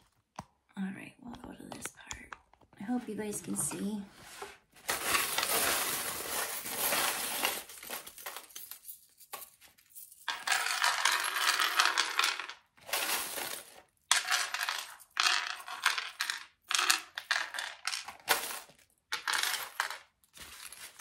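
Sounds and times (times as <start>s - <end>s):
metal charms clattering onto wooden tray: 4.9s - 20.0s.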